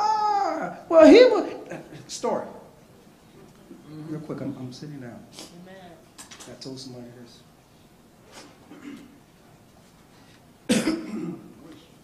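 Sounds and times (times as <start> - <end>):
man coughing: 8.7 - 9.2, 10.7 - 11.6.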